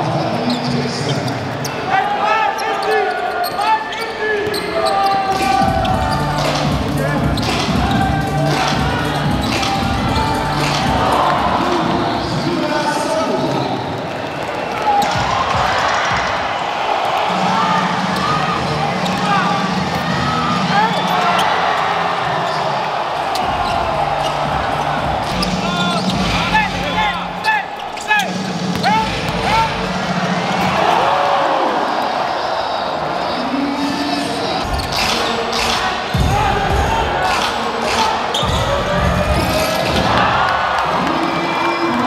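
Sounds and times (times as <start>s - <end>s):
sneakers squeaking on floor: 0.0s - 12.6s, 18.2s - 29.8s, 34.3s - 36.3s, 37.2s - 40.1s
crowd murmur: 5.1s - 42.0s.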